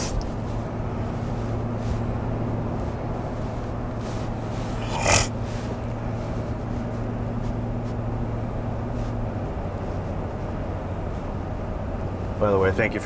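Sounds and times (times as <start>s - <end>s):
truck engine drone inside cab: 0.0s - 13.0s.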